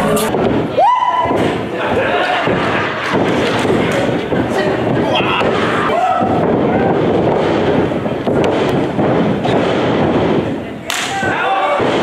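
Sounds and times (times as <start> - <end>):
shouting voices in a hall: 0.0 - 7.2, 10.7 - 12.0
loud body slam: 0.2 - 12.0
thuds on wrestling ring canvas: 0.3 - 12.0.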